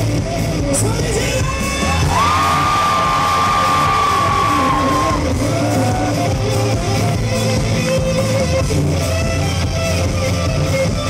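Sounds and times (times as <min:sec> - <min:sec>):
electric guitars: 0:00.0 - 0:11.0
rock band playing live: 0:00.0 - 0:11.0.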